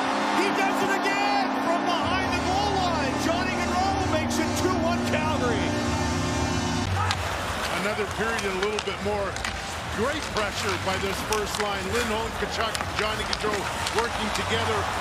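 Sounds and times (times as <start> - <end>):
goal horn: 0.0 - 7.4
arena music: 0.0 - 15.0
crowd cheering: 0.0 - 15.0.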